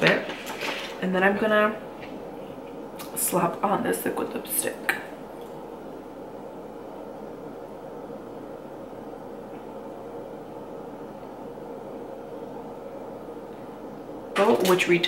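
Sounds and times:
room noise hum and hiss: 0.0 - 15.0.

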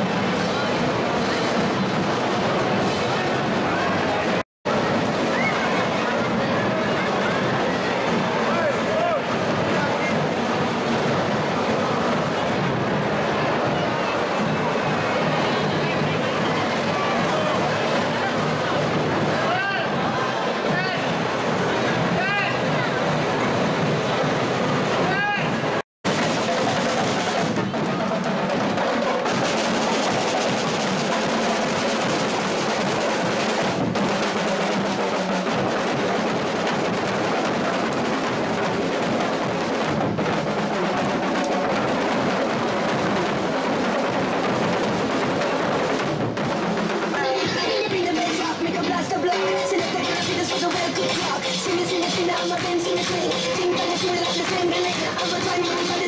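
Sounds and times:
crowd voices: 0.0 - 56.0
snare and marching drums: 0.0 - 56.0.

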